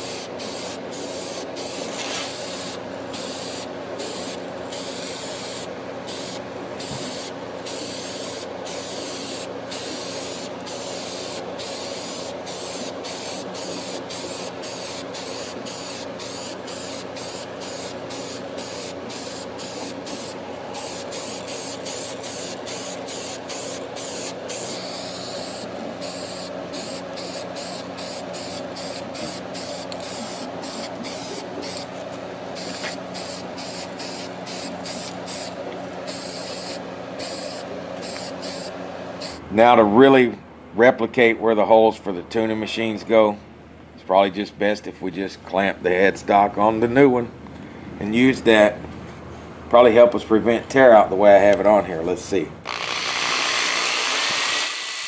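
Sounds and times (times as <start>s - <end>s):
low motor hum: 13.8s - 36.2s
spraying hiss: 36.1s - 39.4s.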